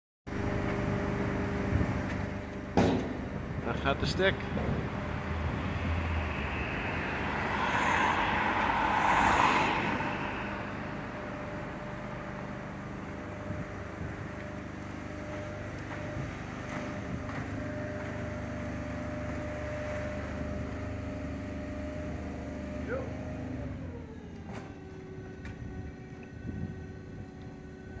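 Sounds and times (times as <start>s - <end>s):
ladder lift motor whine: 0.3s - 3.6s, 10.2s - 28.0s
passing vehicle: 0.3s - 28.0s.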